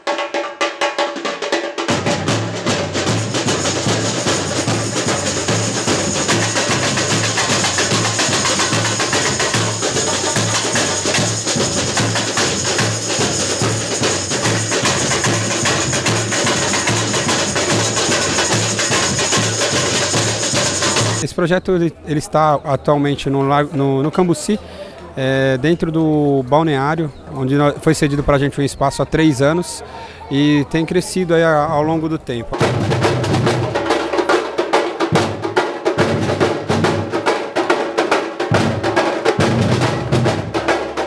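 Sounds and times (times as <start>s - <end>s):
snare drums and shakers: 0.0s - 21.2s, 32.5s - 41.0s.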